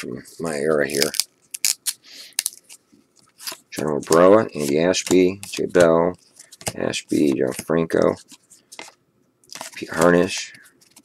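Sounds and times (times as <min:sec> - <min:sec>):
cards rubbing: 0:00.4 - 0:11.0.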